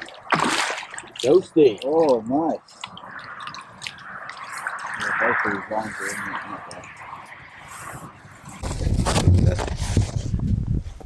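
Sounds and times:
water splashing and dripping: 0.0 - 7.9
rushing water: 0.0 - 8.6.

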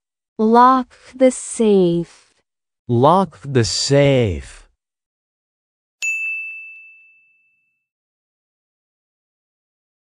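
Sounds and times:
bright chime ding: 6.0 - 7.8.

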